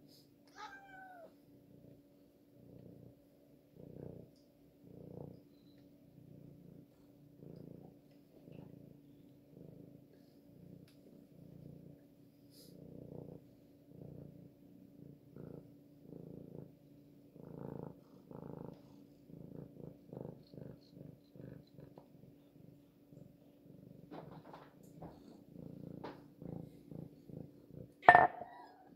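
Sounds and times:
cat purring: 0.0s - 28.9s.

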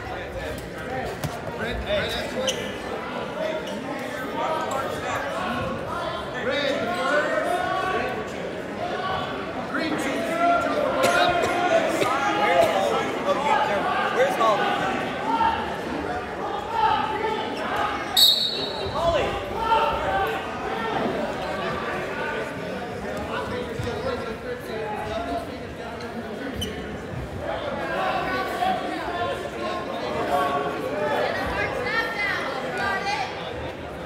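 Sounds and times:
crowd chatter: 0.0s - 34.0s
spectators talking: 0.0s - 34.0s
referee's whistle blast: 18.2s - 19.0s.

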